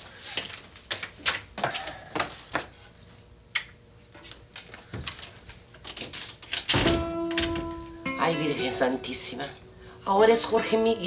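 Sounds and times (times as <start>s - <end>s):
footsteps on a floor: 0.0s - 3.2s, 4.2s - 5.7s
door opening and shutting: 5.9s - 8.0s.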